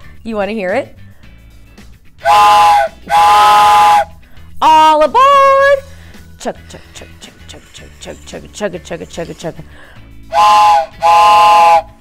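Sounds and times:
toy train whistle blast: 2.2 - 4.2, 10.3 - 12.0.

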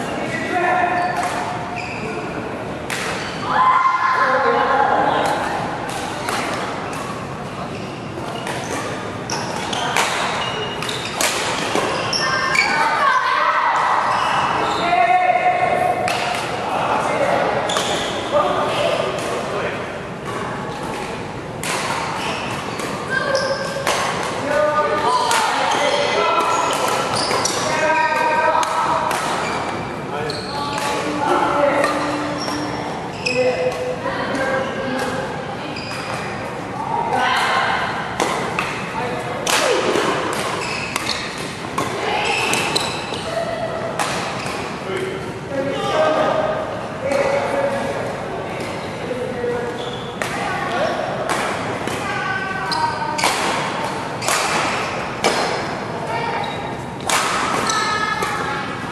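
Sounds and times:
voices talking: 0.0 - 58.9
racket hitting shuttlecock: 2.9 - 3.3, 8.4 - 12.0, 16.0 - 16.6, 20.3 - 25.6, 26.4 - 29.8, 38.1 - 43.2, 43.9 - 44.8, 51.2 - 52.0, 53.2 - 55.7, 57.0 - 58.5.

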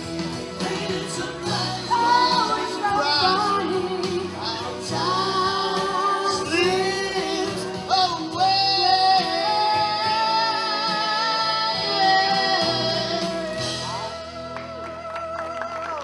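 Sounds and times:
musical accompaniment: 0.0 - 16.0.

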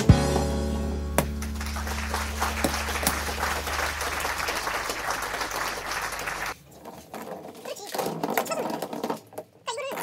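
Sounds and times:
hands clapping: 1.2 - 6.6.

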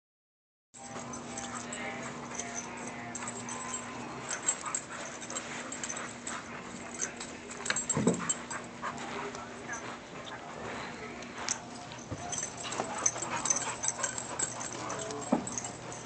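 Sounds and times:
dogs playing rough: 0.8 - 16.0
scuffling: 0.8 - 16.0
steady low hum: 0.8 - 16.0.

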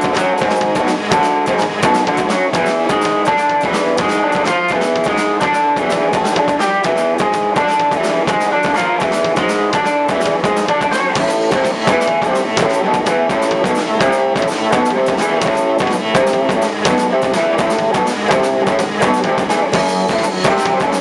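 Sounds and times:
drum kit fast beat: 0.0 - 21.0
electric guitar: 0.0 - 21.0
live rock band: 0.0 - 21.0.

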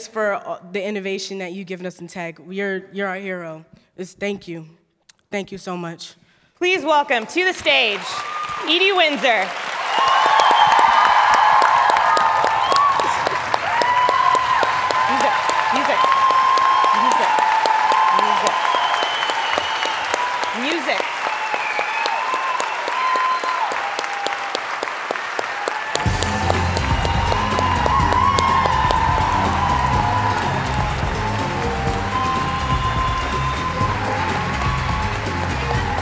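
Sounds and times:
audience applauding: 7.2 - 36.0
music with heavy bass beat: 26.0 - 36.0.

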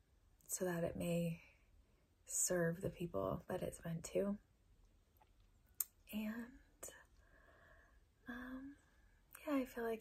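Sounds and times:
woman speaking: 0.5 - 1.5, 2.3 - 4.4, 6.1 - 7.0, 8.3 - 8.8, 9.4 - 10.0.

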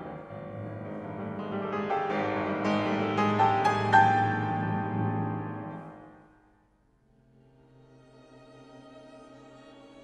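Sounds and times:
grand piano chords: 0.0 - 6.6
string orchestra tones: 7.6 - 10.0.

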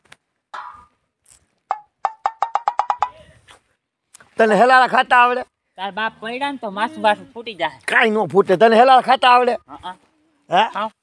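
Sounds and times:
wood block knocks: 0.5 - 1.0, 1.7 - 3.2.

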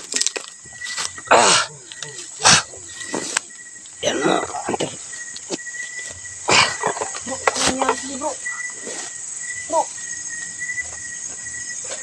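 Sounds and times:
night insects chirring: 0.0 - 12.0
brushing through grass and leaves: 7.4 - 10.4.

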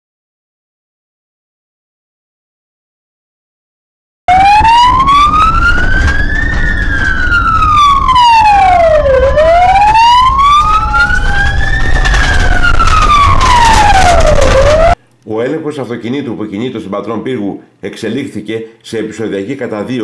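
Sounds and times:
engine and road rumble: 4.3 - 15.0
police siren wailing: 4.3 - 15.0
second siren tone gliding down: 4.3 - 15.0.

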